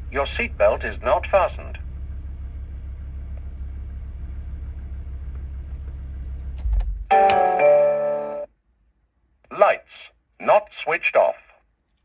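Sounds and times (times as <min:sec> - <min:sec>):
car engine idling: 0:00.0 - 0:07.6
ignition clicks: 0:05.2 - 0:07.6.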